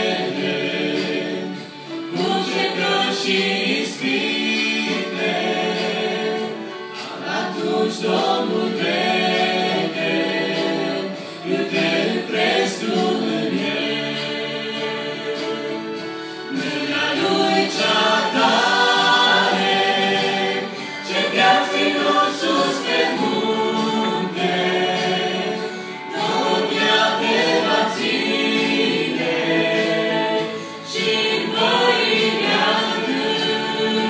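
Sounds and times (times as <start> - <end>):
group singing worship song in harmony: 0.0 - 34.0.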